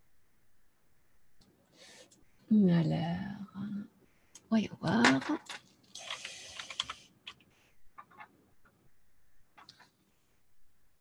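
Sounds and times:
typing on computer keyboard: 5.4 - 7.4.

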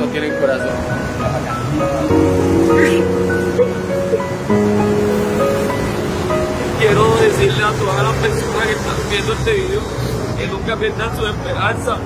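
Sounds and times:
slow music of held chords: 0.0 - 8.0.

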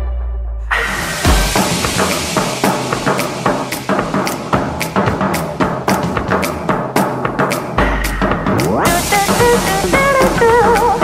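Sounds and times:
up-tempo dance music: 0.7 - 11.0
kick and snare drum beat: 1.2 - 11.0.

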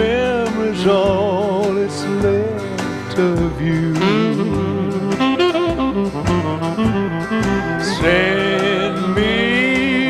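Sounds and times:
backing band: 0.0 - 10.0
tenor saxophone solo: 4.0 - 10.0.

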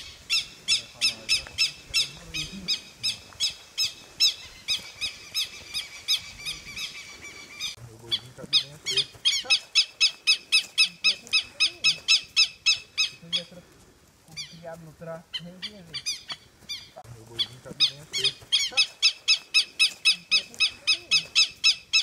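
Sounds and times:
bird chirping: 0.0 - 13.5, 14.3 - 22.0.

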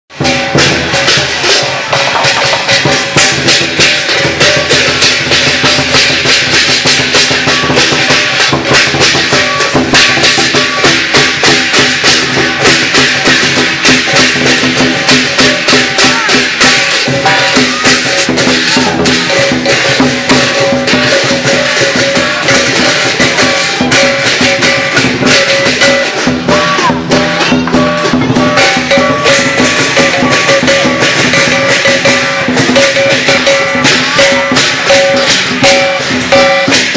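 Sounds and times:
big drum beating: 0.1 - 36.9
crashing cymbals: 0.1 - 36.9
gong: 0.1 - 36.9.

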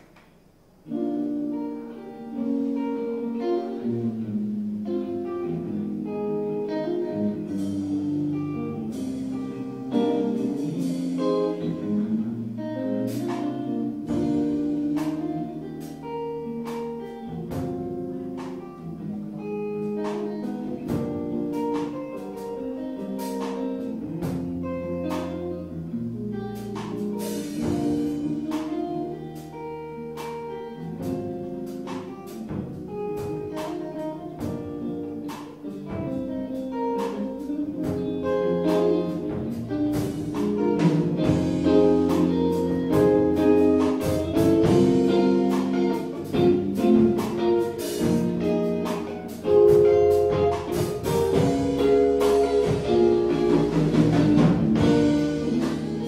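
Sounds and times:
live rock band playing: 0.0 - 56.0.

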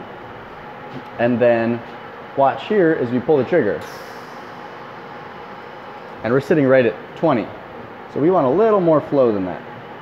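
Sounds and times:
steady hum and hiss: 0.0 - 10.0.

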